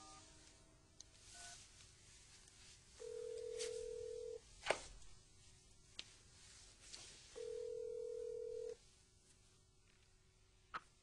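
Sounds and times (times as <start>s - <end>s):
telephone ringing: 3.0s - 4.4s, 7.4s - 8.8s.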